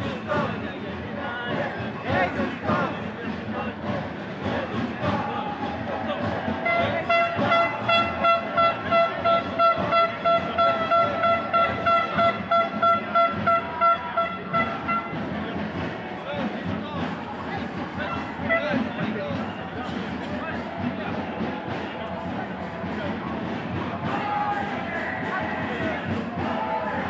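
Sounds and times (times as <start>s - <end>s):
marching crowd: 0.0s - 27.0s
horn tooting rapidly: 6.6s - 15.5s, 18.1s - 19.0s.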